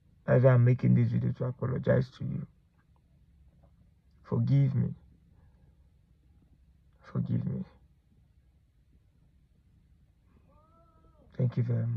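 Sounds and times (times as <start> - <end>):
faint high-pitched call: 10.3 - 11.9.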